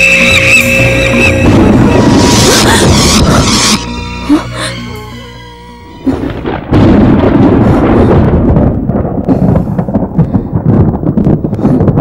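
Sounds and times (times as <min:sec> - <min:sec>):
loud thunder crackling: 0:01.2 - 0:03.8, 0:06.0 - 0:12.0.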